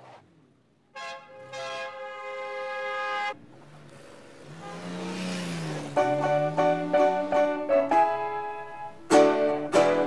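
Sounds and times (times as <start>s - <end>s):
street traffic noise: 0.0s - 10.0s
vehicle horn blast: 0.9s - 3.4s, 4.4s - 5.2s.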